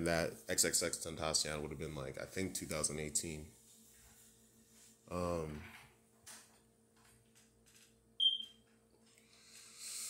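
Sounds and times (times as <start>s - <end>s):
high-pitched chirp: 8.2s - 8.5s.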